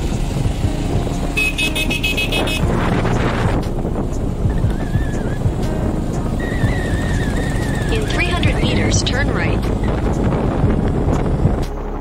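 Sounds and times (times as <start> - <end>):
motorcycle engine running: 0.0 - 12.0
wind noise on microphone: 0.0 - 12.0.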